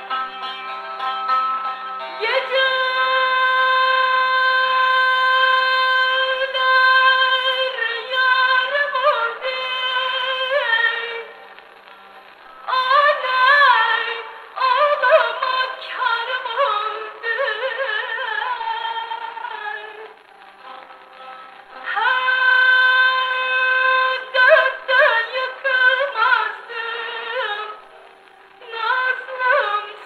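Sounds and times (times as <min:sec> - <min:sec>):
record surface hiss: 0:00.0 - 0:30.0
woman singing a long note: 0:02.2 - 0:11.4, 0:21.8 - 0:27.9, 0:28.6 - 0:30.0.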